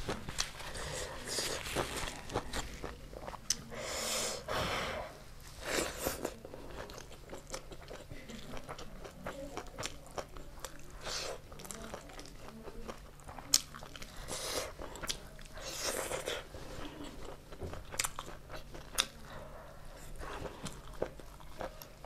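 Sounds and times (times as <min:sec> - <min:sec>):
person chewing crunchy food: 0:00.0 - 0:04.5, 0:05.4 - 0:22.0.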